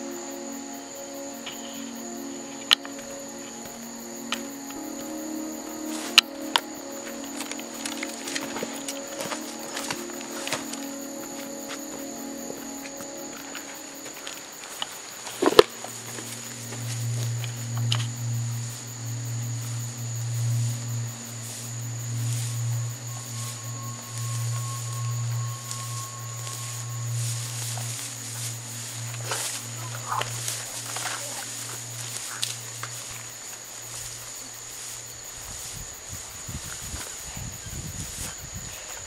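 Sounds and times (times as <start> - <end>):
low droning rumble: 15.6 - 33.9.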